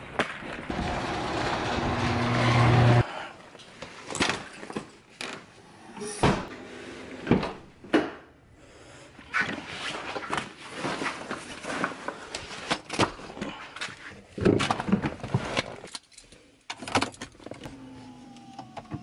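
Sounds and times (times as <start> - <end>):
loud growling hum: 0.7 - 3.1.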